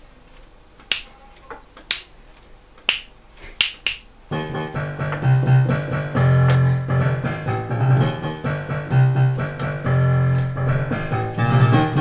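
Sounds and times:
finger snaps: 0.8 - 1.2, 1.8 - 2.2, 2.8 - 4.1.

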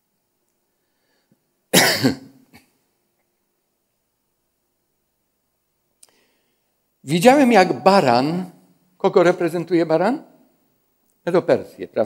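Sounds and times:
person coughing: 1.7 - 2.8.

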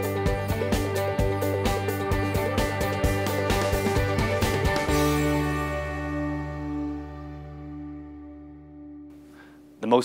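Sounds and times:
theme music with quick beat: 0.0 - 6.8.

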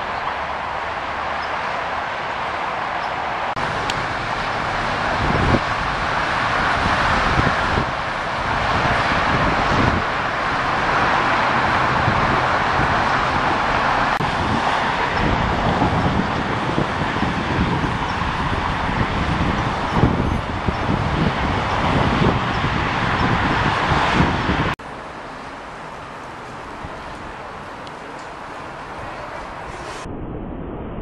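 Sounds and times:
wind on microphone: 0.0 - 24.8
freeway traffic hiss: 0.0 - 30.0.

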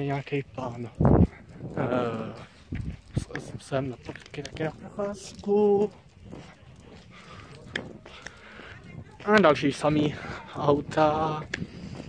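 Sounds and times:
footsteps on asphalt: 0.0 - 12.0.

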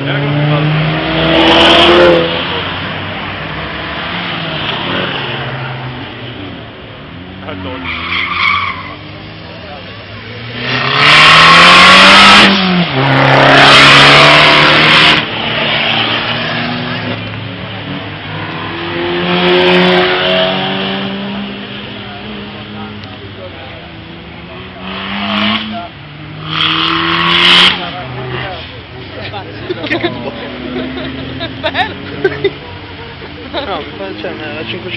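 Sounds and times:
car engines revving: 0.0 - 34.9
tyre squeal: 7.8 - 9.2.

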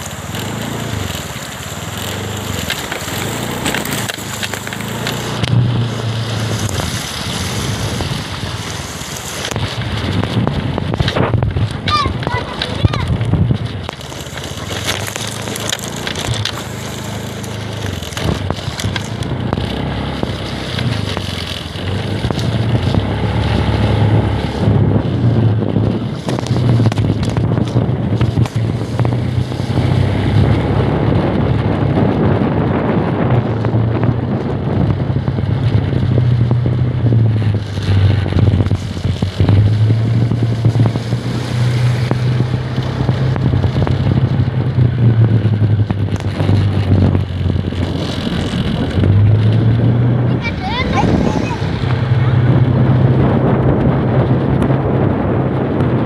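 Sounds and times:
motorcycle engine running: 0.0 - 56.0
water splashing around wheels: 0.0 - 56.0.

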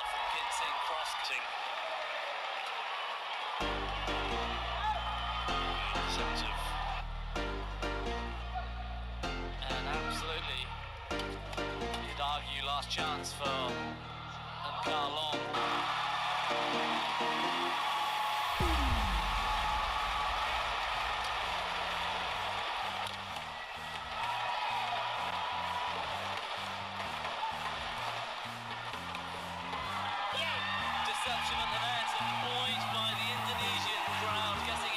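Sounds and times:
arena crowd noise: 0.0 - 34.9
deep falling boom: 18.6 - 22.1.

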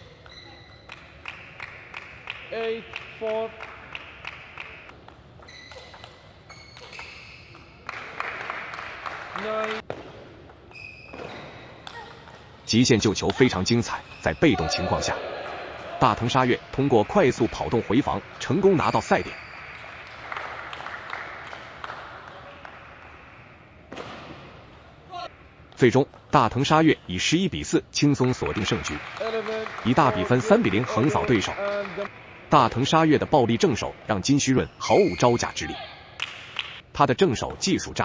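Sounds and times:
shoes squeaking on floor: 0.0 - 1.2, 5.3 - 7.8, 10.6 - 12.5, 13.8 - 15.0, 18.6 - 19.8, 34.5 - 35.8
low hall ambience: 0.0 - 38.0.

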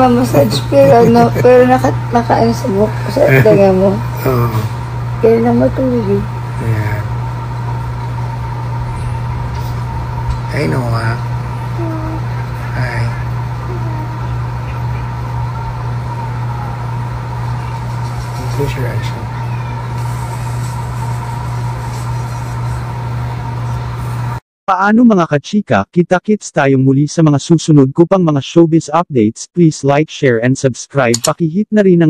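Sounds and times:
steady low hum: 0.0 - 24.4.

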